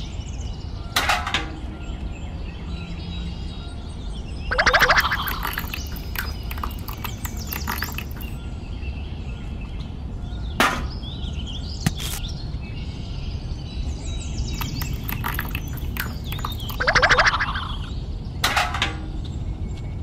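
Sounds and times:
birds chirping: 4.5 - 8.4, 14.4 - 17.9
rapid chattering bird calls: 4.5 - 8.4, 14.5 - 17.6
sharp click: 11.8 - 12.2.

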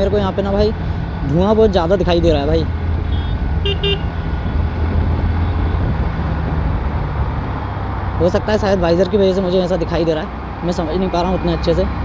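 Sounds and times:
motorcycle engine running: 0.0 - 7.5
road and wind noise: 0.0 - 12.0
horn toots: 3.0 - 4.2.

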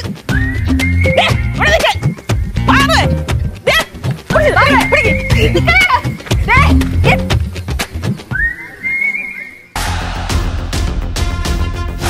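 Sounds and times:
rising whistle: 0.3 - 1.6, 8.3 - 9.8.

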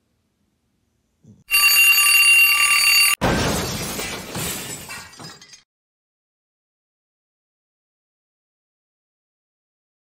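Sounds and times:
alarm ringing: 1.5 - 3.2
loud smashing crash: 3.0 - 5.6.

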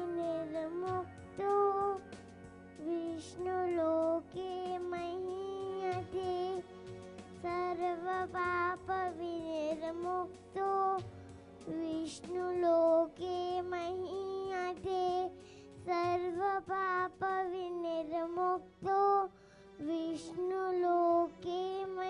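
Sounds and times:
girl singing into microphone: 0.0 - 2.1, 2.8 - 6.7, 7.4 - 22.0.

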